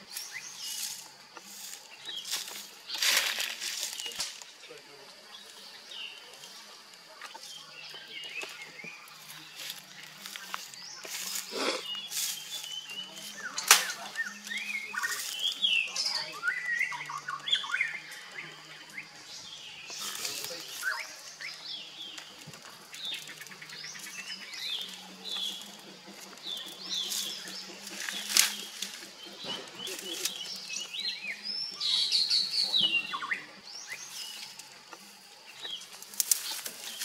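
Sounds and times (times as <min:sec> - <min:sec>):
leafy branches rustling: 0:00.0 - 0:37.0
small birds chirping: 0:00.0 - 0:37.0
sharp cracks of branches: 0:02.3 - 0:04.6, 0:13.6 - 0:14.6, 0:27.8 - 0:30.7, 0:35.9 - 0:37.0.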